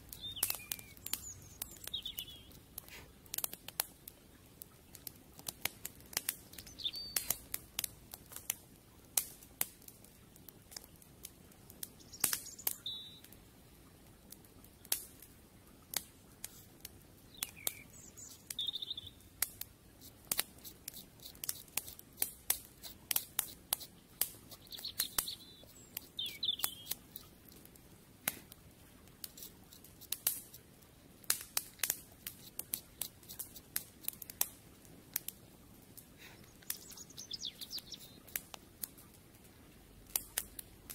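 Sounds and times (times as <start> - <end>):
fire crackling: 0.0 - 40.9
bird chirping: 0.1 - 2.6, 6.5 - 7.4, 12.0 - 13.3, 17.3 - 19.3, 24.5 - 27.1, 36.2 - 38.4.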